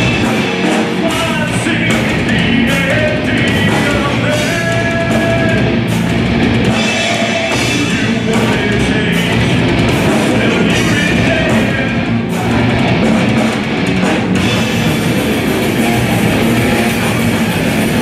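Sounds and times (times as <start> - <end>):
bass guitar: 0.0 - 18.0
distorted electric guitars: 0.0 - 18.0
drum kit with crashing cymbals: 0.0 - 18.0
person singing into microphone: 1.0 - 5.8, 6.7 - 12.8.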